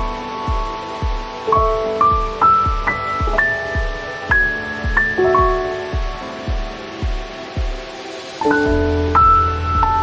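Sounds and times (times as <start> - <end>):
soft low beat: 0.0 - 7.9, 8.7 - 10.0.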